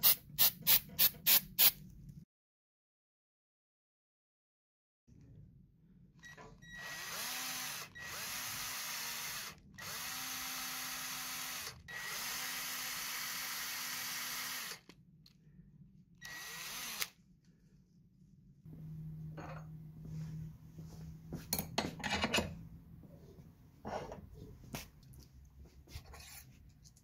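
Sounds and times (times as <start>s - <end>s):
cordless drill motor whine: 6.6s - 14.9s, 16.2s - 17.2s.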